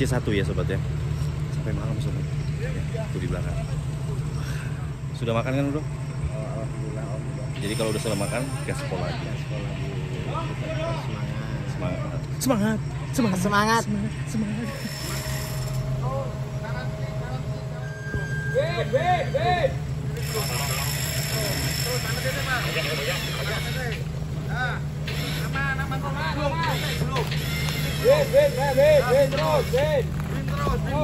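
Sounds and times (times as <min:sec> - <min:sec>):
off-road vehicle engine running: 0:00.0 - 0:31.0
people calling out: 0:12.8 - 0:31.0.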